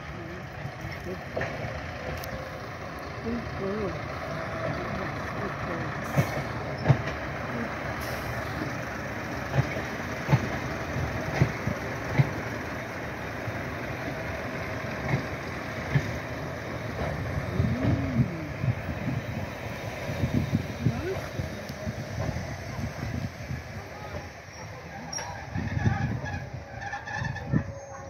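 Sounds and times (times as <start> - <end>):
train rumble: 0.0 - 28.0.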